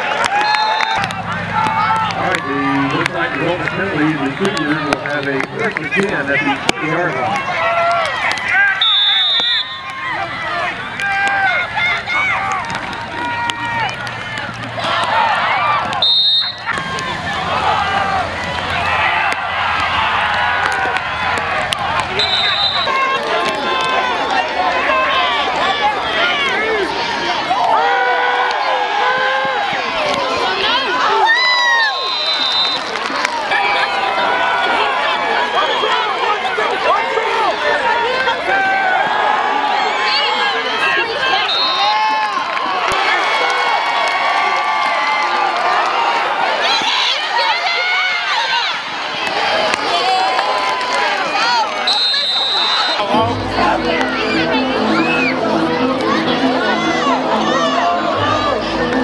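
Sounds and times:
crowd shouting and cheering: 0.0s - 59.0s
short high whistle blasts: 8.8s - 9.8s, 22.2s - 22.9s, 31.8s - 32.8s, 51.9s - 53.1s.

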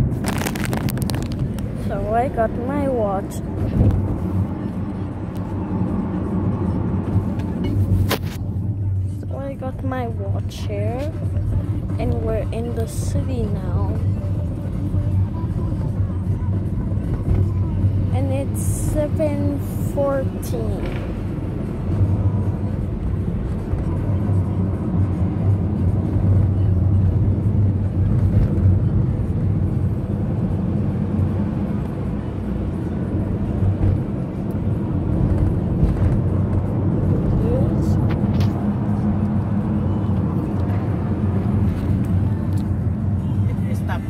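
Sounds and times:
car engine and tyres rumbling: 0.0s - 44.0s.

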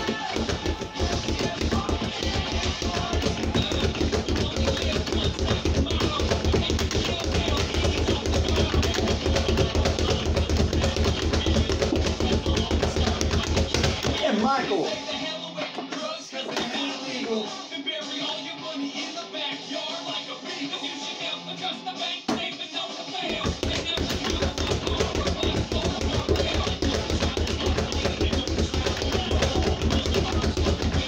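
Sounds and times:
speed bag drumming: 0.0s - 14.3s, 23.3s - 31.0s
song with vocals: 0.0s - 31.0s.

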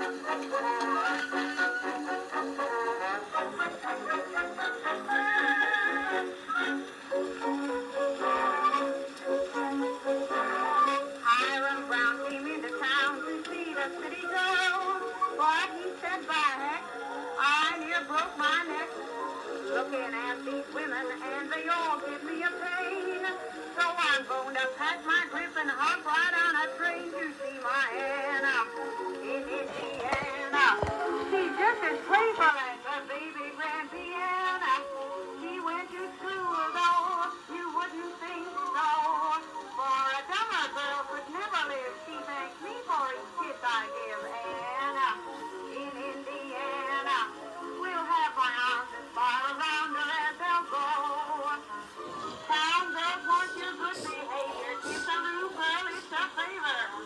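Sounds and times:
woman singing with vibrato: 0.0s - 7.0s, 7.9s - 57.0s
small band playing: 28.5s - 32.4s.

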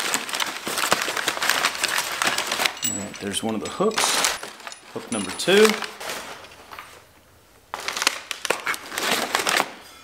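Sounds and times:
packing paper crinkling: 0.0s - 7.0s, 7.7s - 9.8s.

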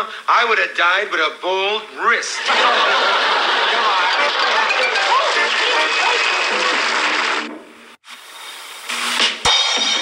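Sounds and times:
audience laughter and applause: 2.4s - 7.5s.

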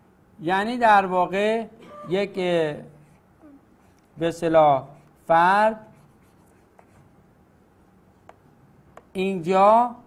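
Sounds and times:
marker scratching on whiteboard: 4.8s - 7.2s.

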